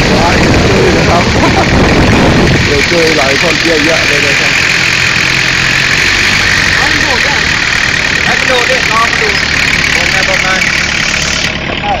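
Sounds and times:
road noise: 0.0 - 12.0
vehicle engine running: 0.0 - 12.0.

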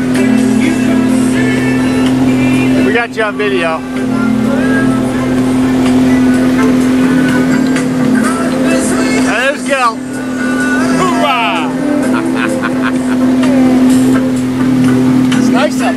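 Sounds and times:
boat engine droning: 0.0 - 15.9
people shouting: 10.9 - 13.9.

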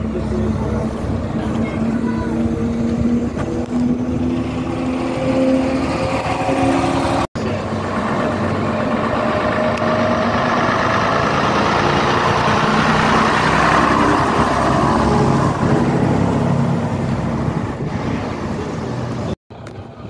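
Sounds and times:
bus diesel engine idling: 0.0 - 4.8
bus driving past: 0.0 - 20.0.

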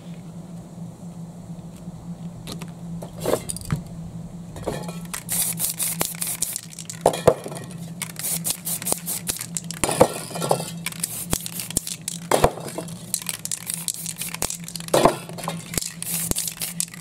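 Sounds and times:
spray paint can hissing: 5.1 - 7.1, 7.7 - 10.2, 10.8 - 17.0
metal cans clinking and knocking: 6.4 - 17.0.

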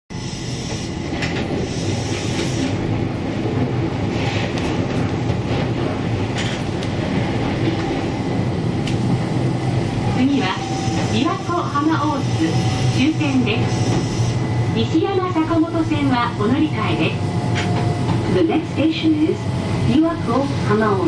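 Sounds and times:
train wheels rumbling on rail: 0.1 - 21.0.

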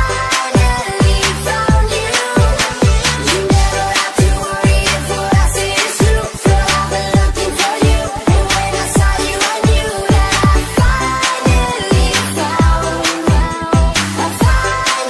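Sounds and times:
electronic dance-pop music: 0.0 - 15.0.

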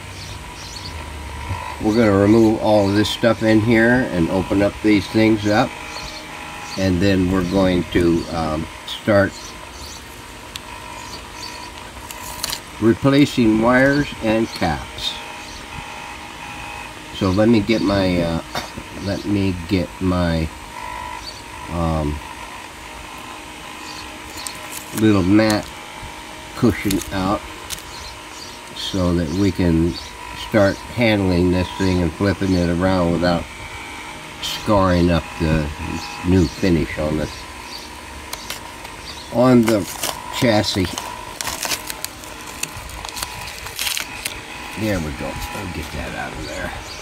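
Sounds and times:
background hum and hiss: 0.0 - 47.0
plastic film clicks: 11.8 - 12.6, 24.3 - 25.8, 26.8 - 27.9, 38.3 - 39.0, 39.6 - 44.4
plastic film crinkling: 12.0 - 12.6, 24.3 - 25.8, 26.6 - 28.0, 38.3 - 46.0.

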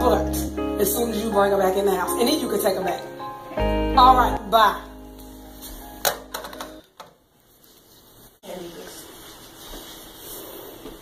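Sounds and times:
low room noise: 0.0 - 11.0.

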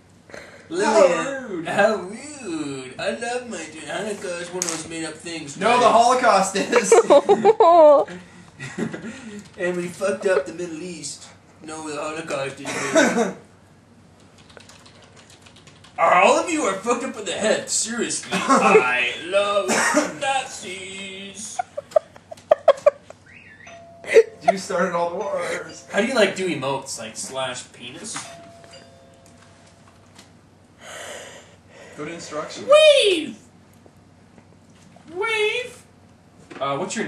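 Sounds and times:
man's voice: 17.8 - 21.6.

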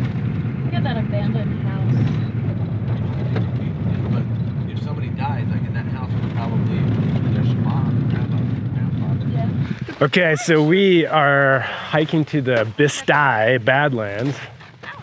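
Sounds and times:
engine and road rumble: 0.0 - 15.0
faint voices in car: 0.7 - 10.6.

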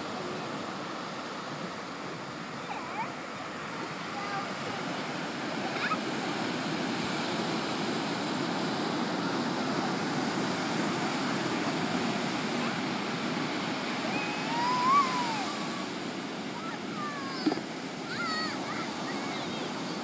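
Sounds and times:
ocean surf breaking: 0.0 - 20.0
child calling out: 14.1 - 15.8, 16.7 - 17.5, 18.1 - 18.9.

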